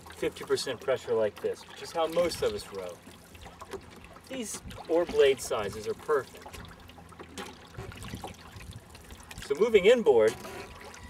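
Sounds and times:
small waves lapping at dock: 0.0 - 11.0
soft water splashes: 0.0 - 11.0.

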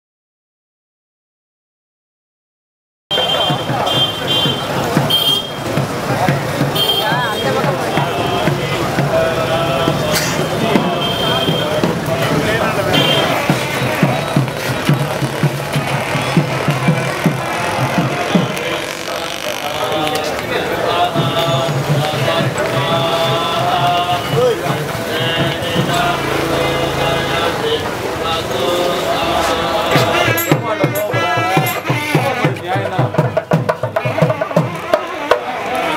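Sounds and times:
many voices: 3.1 - 35.9
music: 3.1 - 35.9
low drum thumps: 3.5 - 28.1, 29.6 - 35.0.

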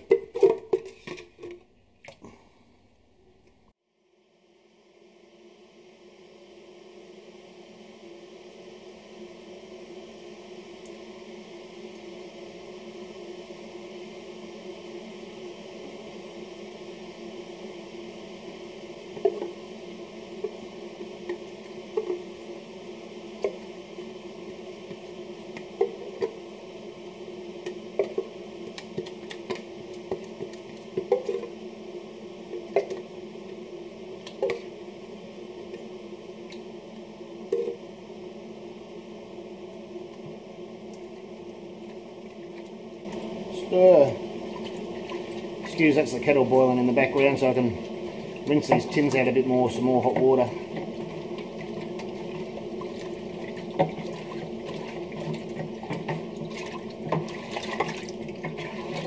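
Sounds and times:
kettle humming: 0.0 - 3.6, 5.2 - 59.0.

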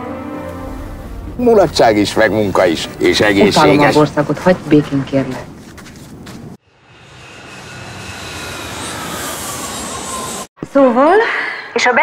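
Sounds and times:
jet aircraft engine rushing: 0.1 - 4.7, 6.6 - 10.6.

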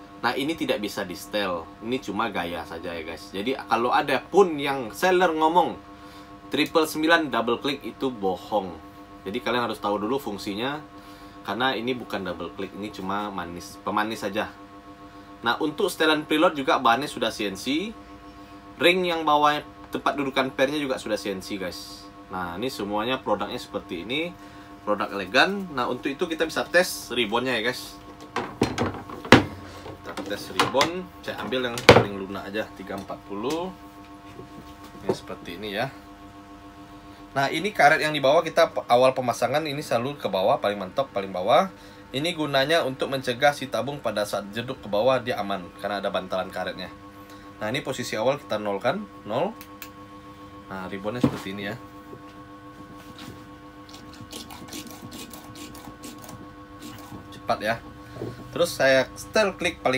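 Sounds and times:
shock absorbers knocking on table: 28.4 - 29.6.

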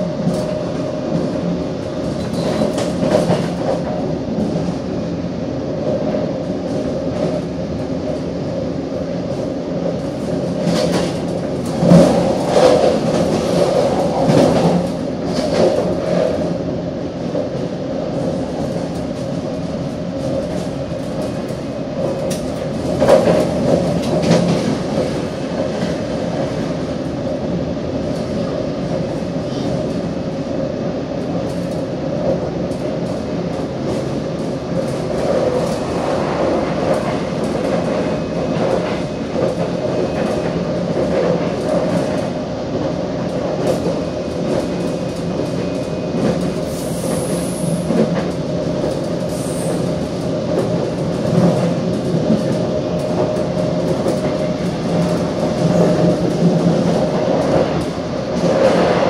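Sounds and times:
train cabin rumble and hum: 0.0 - 59.0.

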